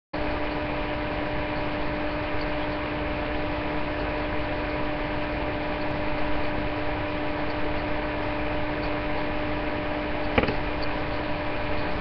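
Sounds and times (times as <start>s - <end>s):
constant hum tone: 0.2s - 12.0s.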